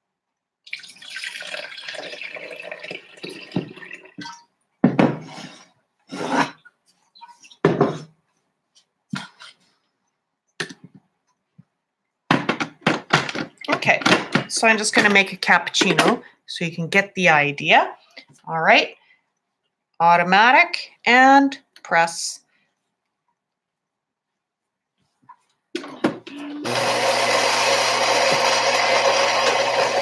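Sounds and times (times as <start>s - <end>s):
milk pouring into carafe: 0.7s - 4.2s.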